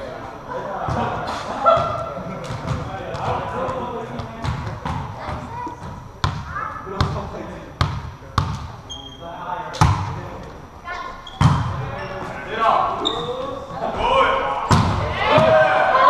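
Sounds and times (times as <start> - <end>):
shoes squeaking on court: 8.4 - 9.2, 11.0 - 12.4, 13.0 - 13.6
players calling out: 11.2 - 16.0.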